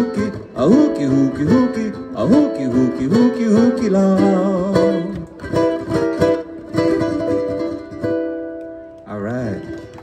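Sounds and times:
ukulele strumming: 0.0s - 10.0s.

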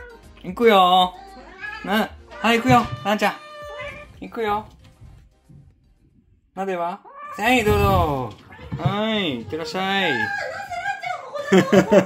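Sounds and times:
kitten meowing: 1.0s - 4.2s, 7.0s - 7.7s.

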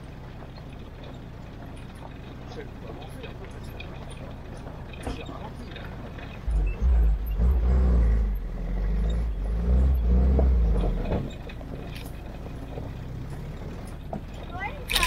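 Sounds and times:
jeep engine running: 0.0s - 15.0s.

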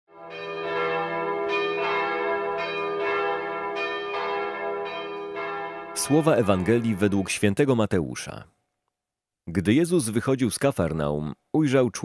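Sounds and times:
bells ringing: 0.2s - 7.5s.

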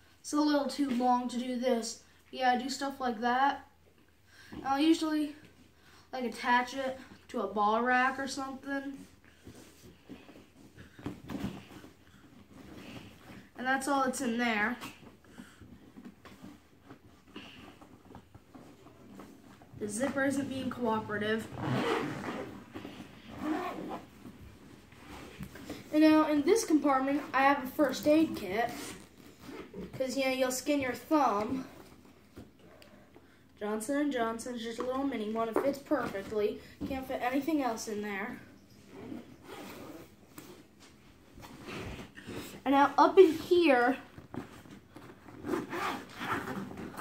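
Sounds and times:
zipper rasping pulls: 17.2s - 25.9s, 28.7s - 30.0s, 38.8s - 40.7s, 44.4s - 47.0s.

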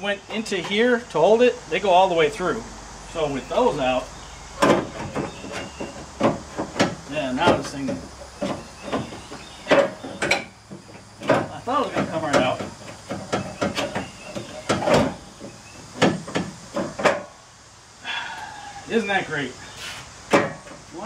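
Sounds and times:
plastic and metal parts knocking: 4.6s - 17.2s.

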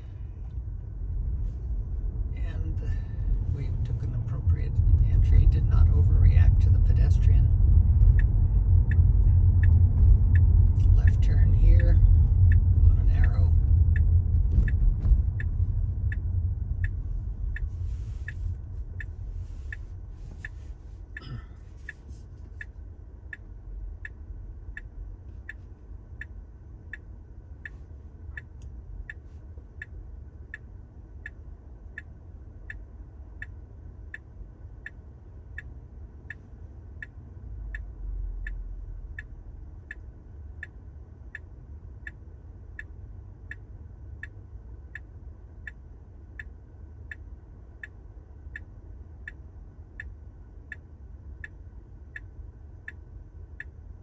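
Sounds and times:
car road and tyre rumble: 0.0s - 54.0s
turn signal ticking: 0.0s - 54.0s.

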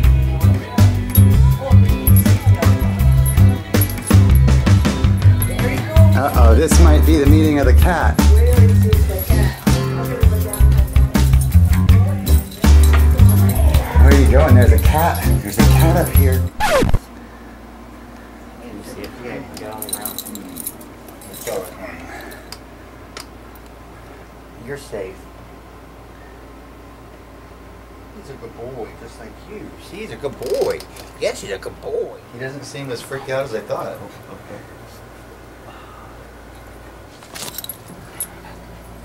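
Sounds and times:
dog harness jingling: 1.0s - 16.6s, 19.6s - 22.5s, 37.2s - 39.0s.

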